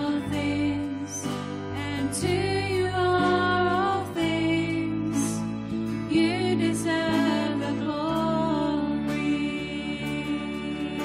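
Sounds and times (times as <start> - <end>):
cello: 0.0 - 11.0
violin: 0.0 - 11.0
women singing: 0.0 - 11.0.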